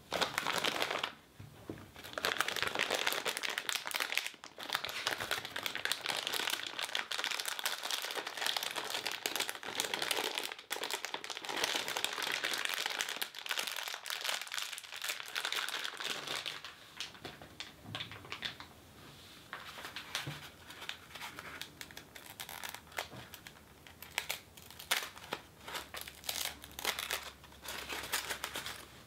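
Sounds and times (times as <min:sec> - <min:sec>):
plastic bag crinkling: 0:00.0 - 0:01.2, 0:02.0 - 0:18.7, 0:19.7 - 0:29.0.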